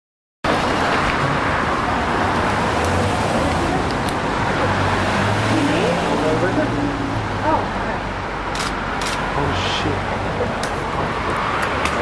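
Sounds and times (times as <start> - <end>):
engine hum of street traffic: 0.4 - 12.0.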